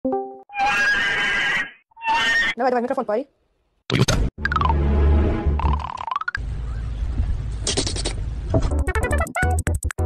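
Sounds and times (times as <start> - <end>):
harsh animal cry: 0.5 - 2.6.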